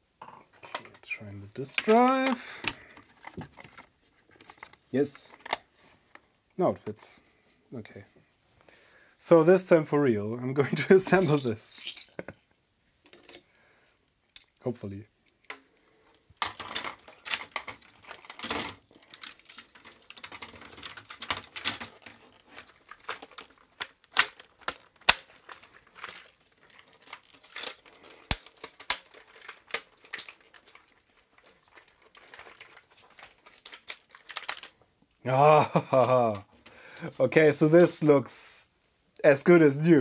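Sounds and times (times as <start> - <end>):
plastic clicks and rattles: 16.4 - 34.8.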